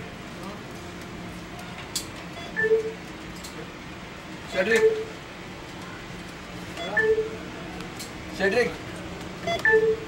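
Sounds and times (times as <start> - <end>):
two-tone card reader beep: 2.4 - 3.0, 4.5 - 5.1, 6.8 - 7.3, 9.4 - 10.0
card reader chirp: 9.4 - 10.0.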